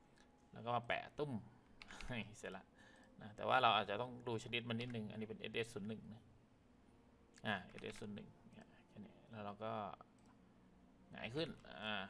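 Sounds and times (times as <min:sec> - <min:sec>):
man speaking: 0:00.6 - 0:06.3, 0:07.4 - 0:10.1, 0:11.1 - 0:12.0
computer mouse click: 0:01.7 - 0:02.1.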